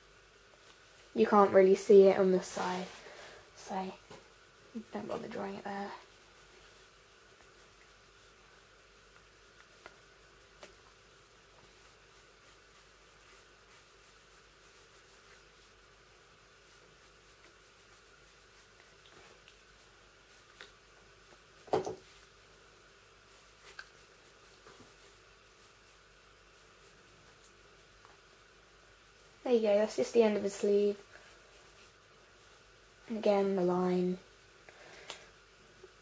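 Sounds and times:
room hum: 0:00.0 - 0:36.0
pencil strokes on paper: 0:00.8 - 0:04.1, 0:04.8 - 0:22.4, 0:23.2 - 0:28.0, 0:29.1 - 0:34.4.

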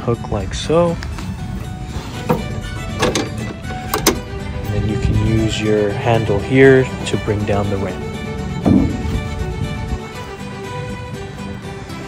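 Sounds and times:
background music: 0:00.0 - 0:12.0
metal latch clicks: 0:02.2 - 0:04.4.

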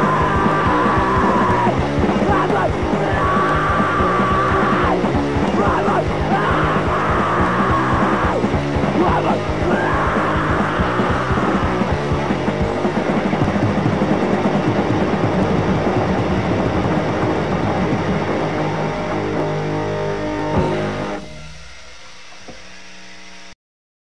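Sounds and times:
hardcore punk band playing: 0:00.0 - 0:21.8.

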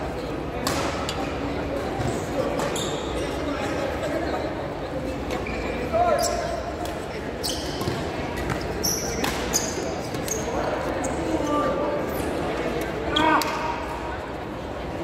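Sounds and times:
echoing chatter of voices: 0:00.0 - 0:15.0
shoes squeaking on court floor: 0:02.0 - 0:03.7, 0:05.1 - 0:12.5.

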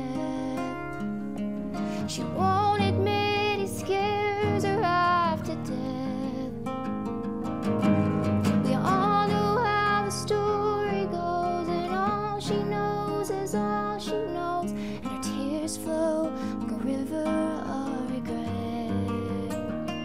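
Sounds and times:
woman singing: 0:00.0 - 0:06.7, 0:08.4 - 0:20.0
acoustic guitar strumming: 0:00.0 - 0:20.0.

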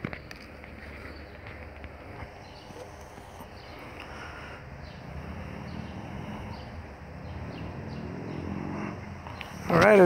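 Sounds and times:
steady low hum: 0:00.0 - 0:09.7.

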